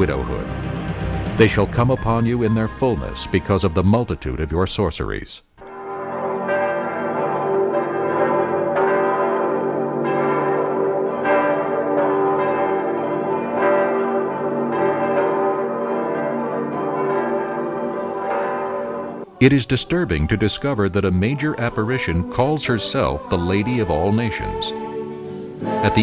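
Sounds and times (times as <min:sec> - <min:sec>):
church bells ringing: 0:00.0 - 0:04.7, 0:05.6 - 0:26.0.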